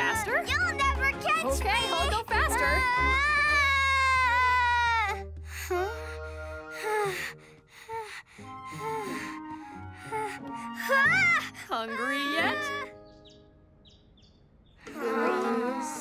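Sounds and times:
background music: 0.0 - 14.0, 14.8 - 16.0
cartoon girl wailing: 2.6 - 5.2, 10.8 - 12.9
whimpers and gasps: 5.5 - 12.6.

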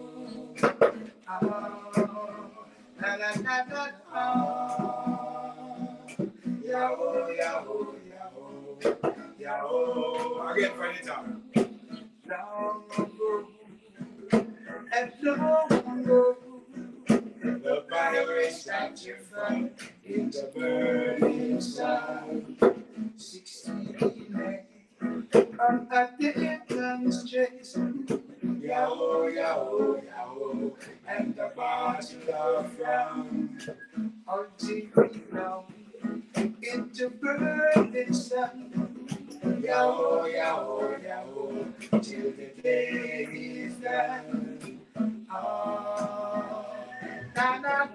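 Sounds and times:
men singing: 0.0 - 47.9
strummed acoustic guitar: 0.0 - 47.9.

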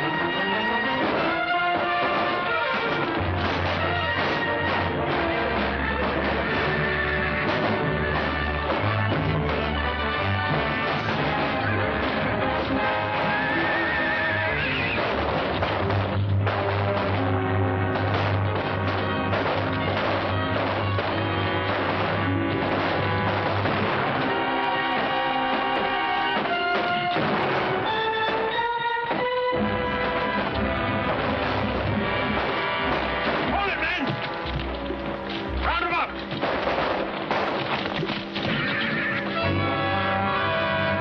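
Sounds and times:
orchestral music: 0.0 - 41.0
sharp knocks and crashes: 1.0 - 6.7, 7.3 - 13.4, 14.9 - 28.5, 29.1 - 39.4.

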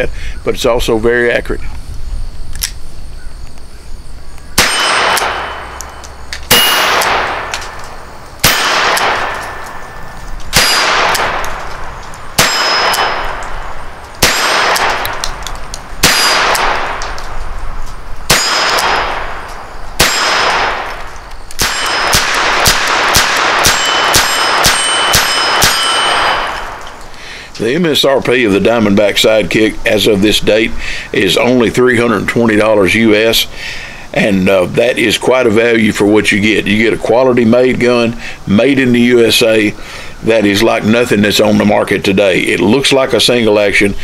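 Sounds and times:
metallic ringing clang: 4.6 - 11.1, 12.4 - 13.6, 21.6 - 22.2, 23.6 - 26.8
sharp metallic clinks: 4.6 - 16.8, 18.3 - 19.1, 20.0 - 27.2.

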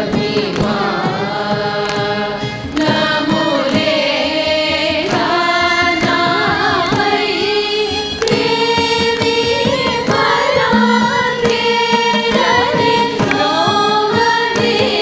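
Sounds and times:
drum strokes: 0.0 - 15.0
women singing in unison: 0.0 - 15.0.

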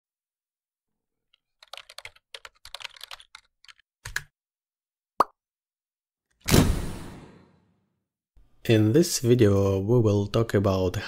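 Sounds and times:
heavy key click with low thud: 6.5 - 7.4.

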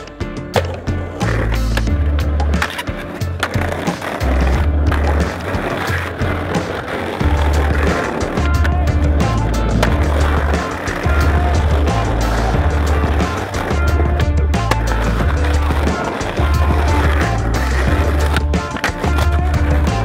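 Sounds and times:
music with deep bass line: 0.0 - 20.0
skateboard popping and landing: 0.0 - 20.0
skateboard wheels rolling on paving: 0.0 - 20.0.

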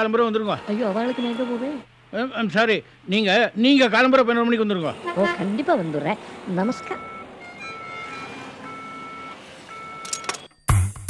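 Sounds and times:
electronic two-note telephone beep: 6.7 - 10.8.

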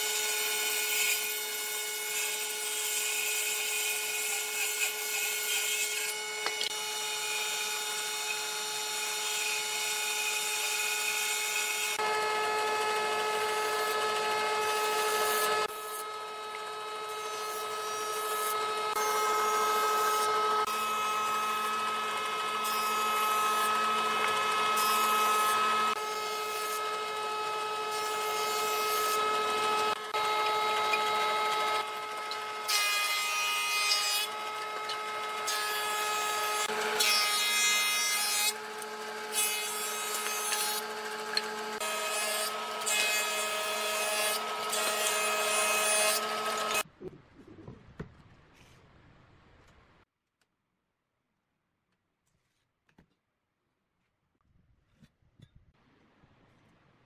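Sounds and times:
jointer-planer whining and cutting: 0.0 - 46.8.

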